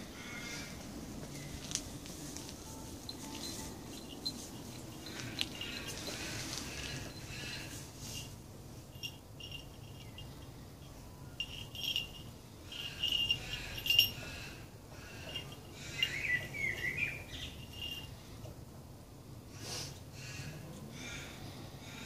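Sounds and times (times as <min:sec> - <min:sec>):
high insect trills: 0:02.5 - 0:18.2.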